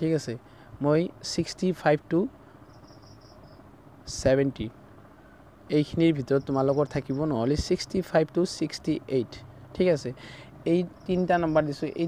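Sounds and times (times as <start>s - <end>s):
low background hiss: 0.0s - 12.0s
high-pitched insect chirp: 2.5s - 3.7s, 6.2s - 7.6s, 10.7s - 12.0s.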